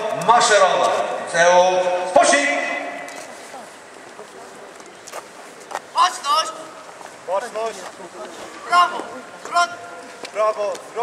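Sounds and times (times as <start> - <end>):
man shouting a command: 0.0 - 3.0, 6.0 - 6.7, 8.6 - 11.0
quiet street ambience: 0.0 - 11.0.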